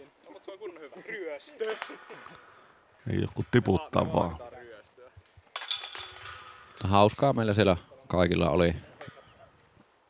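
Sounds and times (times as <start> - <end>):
disc hitting metal chains: 5.5 - 6.7.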